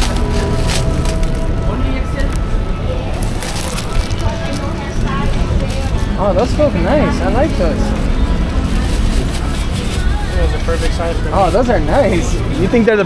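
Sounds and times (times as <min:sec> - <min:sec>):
plastic bag crinkling: 0:00.0 - 0:12.4
market background noise: 0:00.0 - 0:13.0.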